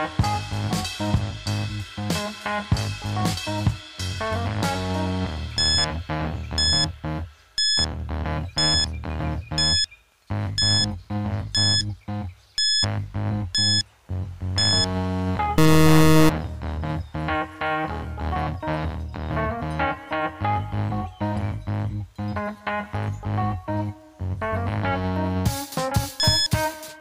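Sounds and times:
background music: 0.0 - 27.0
short high electronic beep: 5.6 - 5.9, 6.6 - 6.9, 9.6 - 9.9, 15.6 - 16.3, 26.2 - 26.5
loud electronic tone: 5.6 - 6.0, 6.6 - 7.0, 7.6 - 7.9, 8.5 - 8.9, 9.6 - 9.9, 10.5 - 12.0, 12.6 - 13.8, 14.6 - 16.4.

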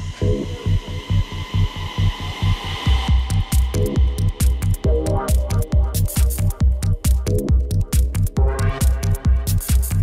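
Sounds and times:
psytrance music: 0.0 - 10.0.

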